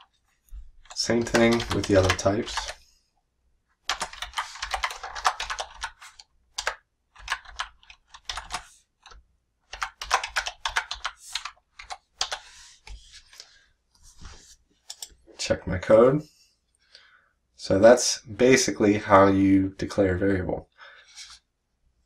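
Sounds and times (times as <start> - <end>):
typing on computer keyboard: 0.8 - 2.8, 3.8 - 13.0, 14.9 - 15.1.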